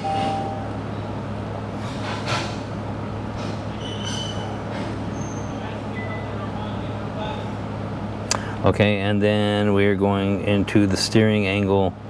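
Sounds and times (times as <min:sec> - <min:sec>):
faint brief high tones: 0:00.0 - 0:00.8
steady low hum: 0:00.0 - 0:03.8, 0:04.5 - 0:12.0.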